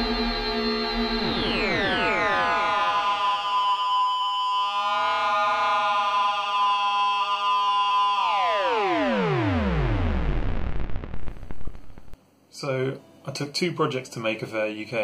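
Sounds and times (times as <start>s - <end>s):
synthesizer drone: 0.0s - 12.2s.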